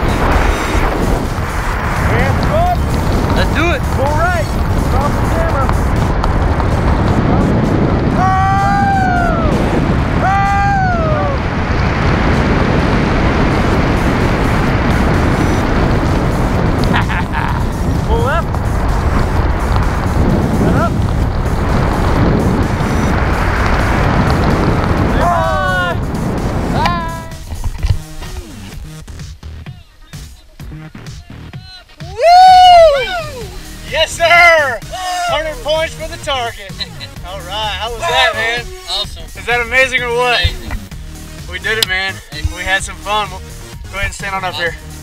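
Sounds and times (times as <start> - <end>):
wind rushing over microphone: 0.0 - 29.2, 32.1 - 45.0.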